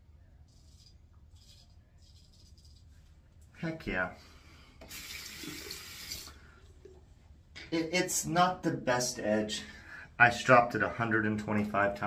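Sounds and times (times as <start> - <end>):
sink tap running: 4.8 - 6.3.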